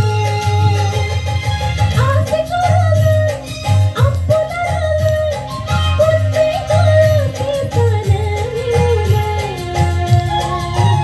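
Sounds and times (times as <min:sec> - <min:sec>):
backing track with bass beat: 0:00.0 - 0:11.0
woman singing: 0:00.0 - 0:11.0.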